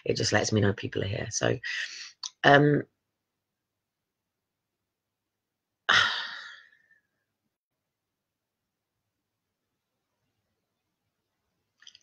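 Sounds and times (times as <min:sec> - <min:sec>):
woman sighing: 0:05.9 - 0:06.9.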